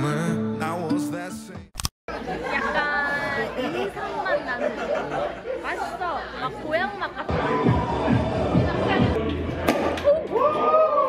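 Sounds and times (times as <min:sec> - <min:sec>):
crowd chattering in restaurant: 0:02.1 - 0:11.0.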